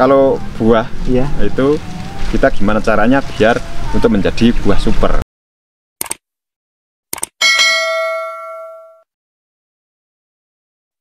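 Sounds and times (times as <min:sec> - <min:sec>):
notification bell ding: 0:07.4 - 0:09.0.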